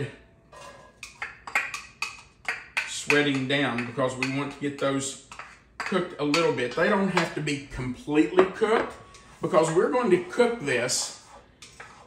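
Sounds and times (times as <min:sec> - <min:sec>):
utensil tapping board and pot: 0:01.0 - 0:07.3.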